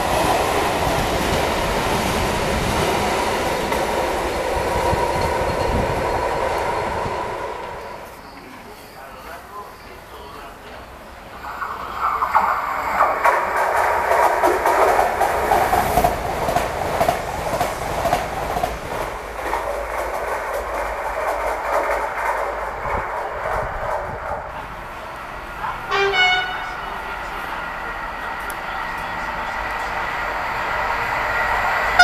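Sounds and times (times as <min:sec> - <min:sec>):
train passing at speed: 0:00.0 - 0:32.0
distant train horn blast: 0:25.9 - 0:27.0.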